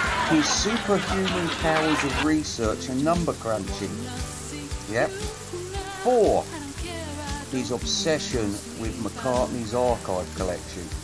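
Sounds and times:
background music with low bass: 0:00.0 - 0:11.0
crackling hiss: 0:00.0 - 0:11.0.

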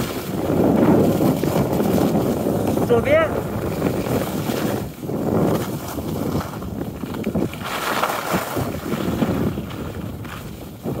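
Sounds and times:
skis sliding over snow: 0:00.0 - 0:11.0
wind buffeting microphone: 0:00.0 - 0:11.0.

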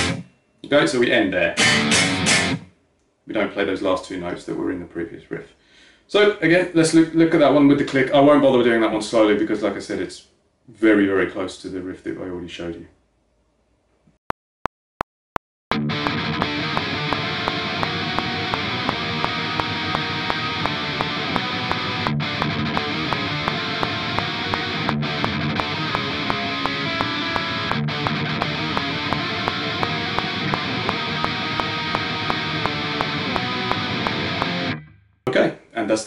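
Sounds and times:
distorted electric guitar riff: 0:00.0 - 0:00.3, 0:01.6 - 0:02.7, 0:15.7 - 0:35.0
metronome click: 0:15.7 - 0:34.9.

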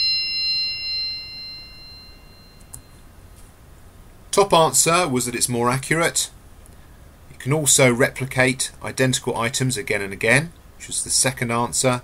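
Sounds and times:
bell-like chime: 0:00.0 - 0:03.1.

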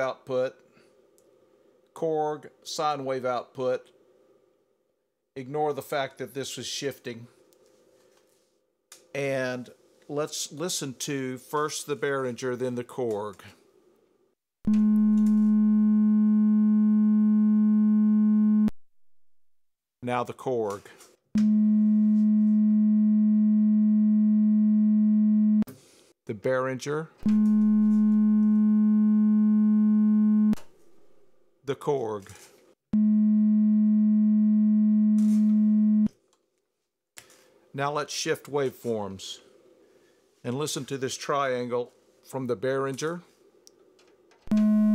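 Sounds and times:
steady synthesizer sine tone: 0:14.7 - 0:18.7, 0:21.4 - 0:25.7, 0:27.3 - 0:30.6, 0:33.0 - 0:36.1, 0:44.5 - 0:44.9.

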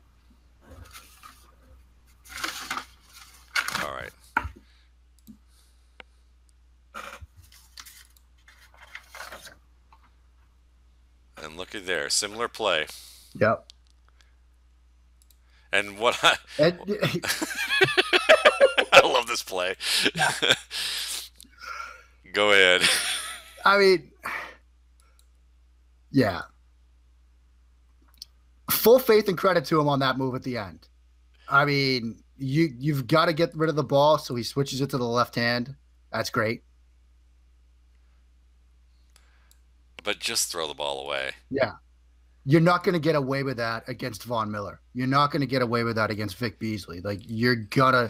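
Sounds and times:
low electrical hum: 0:00.0 - 0:48.0
person speaking: 0:11.4 - 0:13.7, 0:15.7 - 0:21.4, 0:22.3 - 0:24.0, 0:40.0 - 0:41.8.

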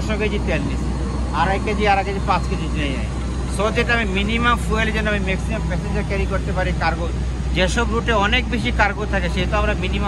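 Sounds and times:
low mechanical hum: 0:00.0 - 0:10.0
man speaking: 0:00.0 - 0:10.0.

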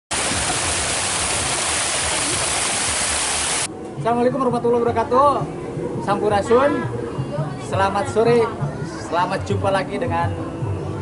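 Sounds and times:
water pouring onto stones: 0:00.1 - 0:03.7.

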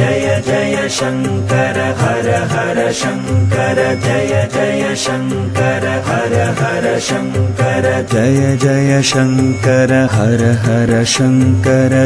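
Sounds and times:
chanted melody: 0:00.0 - 0:12.0.

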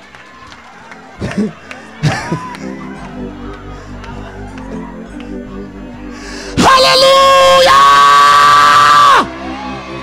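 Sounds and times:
crowd murmur: 0:00.0 - 0:06.8, 0:09.2 - 0:10.0
background music: 0:00.0 - 0:10.0
person yelling: 0:06.6 - 0:09.2.

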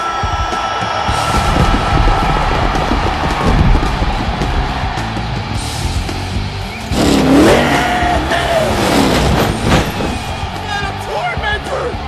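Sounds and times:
loud music: 0:00.0 - 0:12.0
monster truck engine revving: 0:05.0 - 0:10.6.

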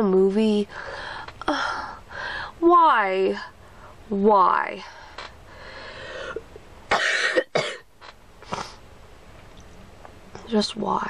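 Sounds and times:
woman breathing out: 0:00.7 - 0:02.6, 0:05.1 - 0:06.5
woman coughing: 0:06.9 - 0:07.9.

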